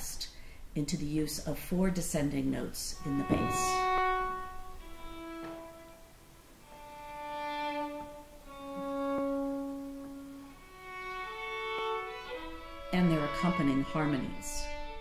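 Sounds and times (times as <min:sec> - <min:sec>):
violin playing long bowed notes: 0:02.9 - 0:15.0.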